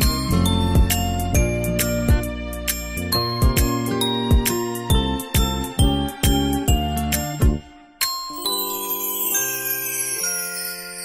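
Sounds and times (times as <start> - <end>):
bell-like struck notes music: 0.0 - 11.0.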